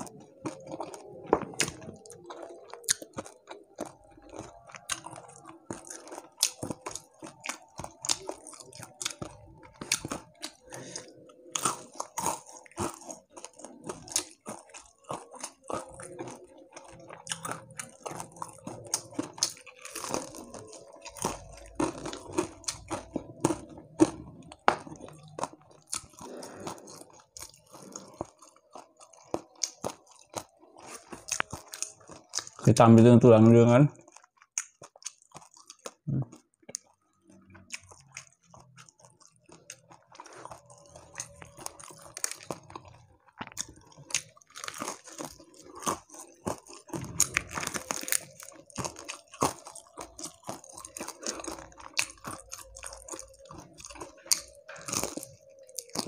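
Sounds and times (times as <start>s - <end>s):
crunchy food being chewed: 0.0s - 56.0s.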